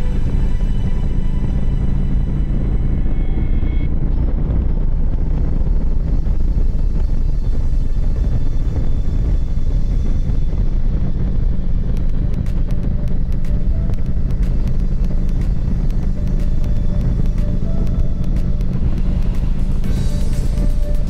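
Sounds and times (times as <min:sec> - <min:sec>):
motorcycle engine running: 0:00.0 - 0:21.0
sharp ticks: 0:10.5 - 0:21.0.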